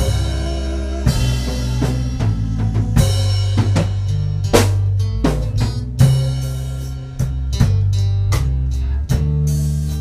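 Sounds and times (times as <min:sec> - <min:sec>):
drum kit hits: 0:00.0 - 0:10.0
electric bass guitar: 0:00.0 - 0:10.0.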